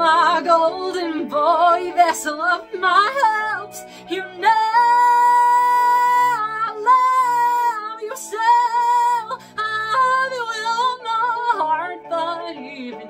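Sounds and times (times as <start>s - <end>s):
musical accompaniment: 0.0s - 13.0s
woman singing: 0.0s - 13.0s.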